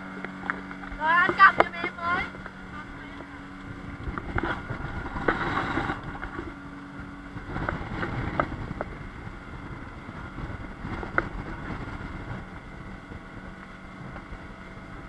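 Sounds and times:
hull knocking on waves: 0.0 - 14.4
rushing water: 0.0 - 15.0
speedboat engine drone: 0.0 - 15.0
wind: 0.0 - 15.0.

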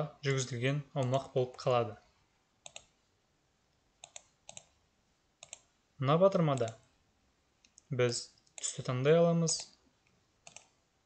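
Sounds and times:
computer mouse clicking: 2.6 - 3.0, 4.0 - 4.8, 5.4 - 5.7, 6.5 - 6.9, 10.4 - 10.8.

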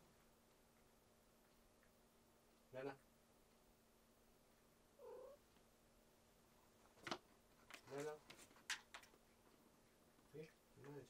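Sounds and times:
cat meowing faintly: 5.0 - 5.4.

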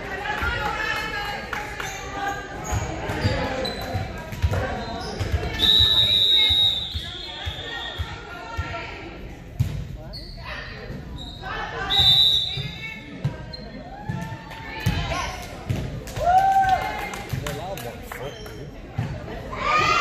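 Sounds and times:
referee's whistle blasts: 5.5 - 8.2, 11.8 - 13.0.

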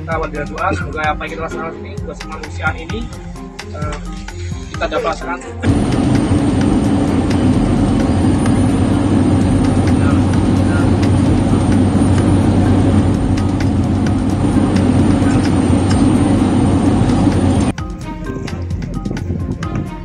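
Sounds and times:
helicopter cabin drone: 2.3 - 20.0.

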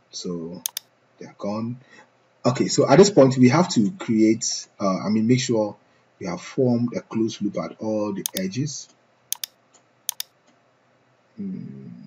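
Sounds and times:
faint room hiss: 0.0 - 12.0
mouse or keyboard clicks: 8.3 - 8.5, 9.3 - 9.5, 10.1 - 10.3.

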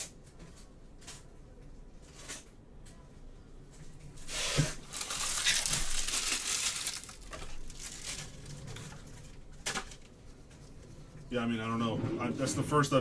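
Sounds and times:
foil wrapper crinkling: 4.3 - 9.3.

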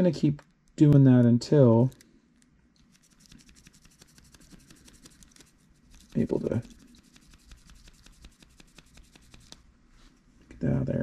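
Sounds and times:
small brush scrubbing: 2.8 - 10.1.

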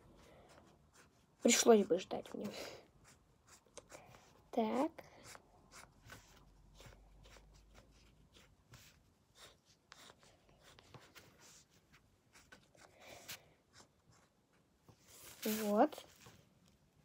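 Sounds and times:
felt-tip marker scratching paper: 3.0 - 14.4.

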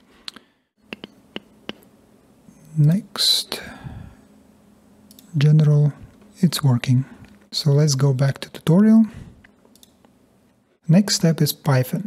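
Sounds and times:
computer mouse clicks: 5.1 - 5.3, 9.6 - 10.2.

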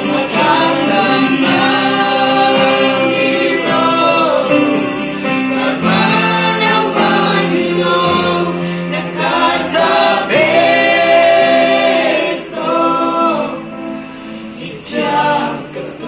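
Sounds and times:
acoustic guitar: 0.0 - 16.0
group singing gospel song: 0.0 - 16.0
keyboard: 0.0 - 16.0.

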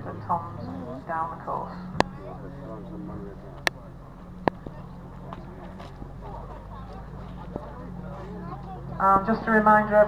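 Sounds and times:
faint murmuring voices: 0.0 - 10.0
steady low drone: 0.0 - 10.0.

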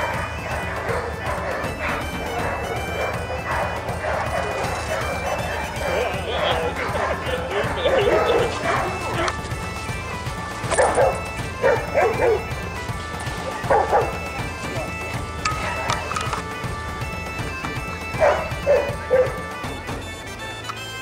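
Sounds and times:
dogs barking: 0.0 - 20.6
background music with held notes: 0.0 - 21.0.

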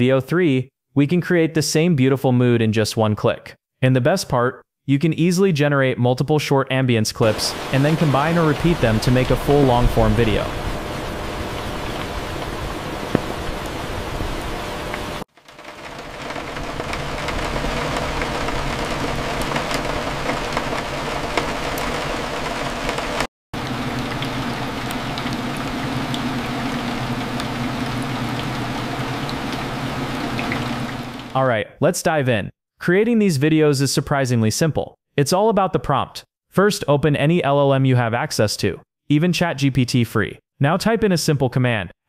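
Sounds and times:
rain falling on windows: 7.3 - 31.4.

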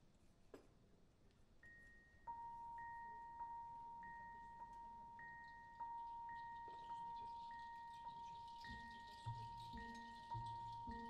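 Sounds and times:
soft bell-like notes: 1.6 - 11.0.

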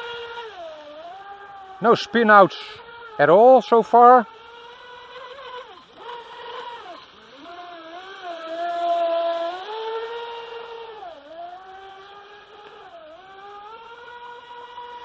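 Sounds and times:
rc speedboat motor whine: 0.0 - 15.0.

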